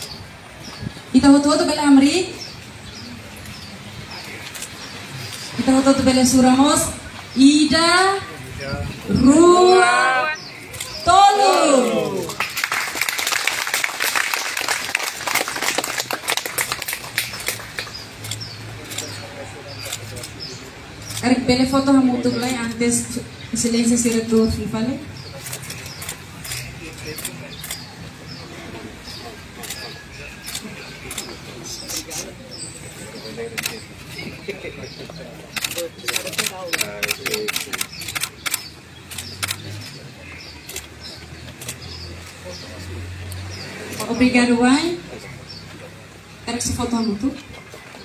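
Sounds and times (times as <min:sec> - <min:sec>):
audience applauding: 0:11.9 - 0:18.3
camera shutters clicking: 0:25.4 - 0:27.8, 0:33.6 - 0:33.8, 0:35.6 - 0:39.8.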